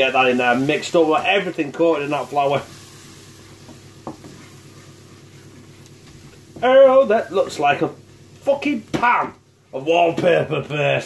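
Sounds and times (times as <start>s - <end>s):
wooden spoon stirring in a pan: 0.0s - 10.9s
quiet steady sizzle: 0.0s - 11.0s.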